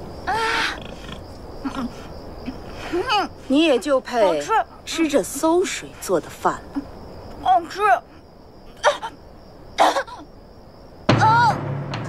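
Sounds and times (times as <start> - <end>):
pig squealing: 0.3 - 1.2.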